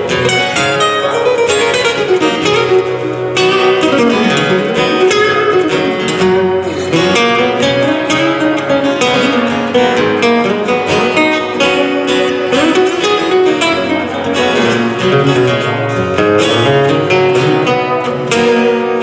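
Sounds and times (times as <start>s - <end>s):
acoustic guitars playing: 0.0s - 19.0s.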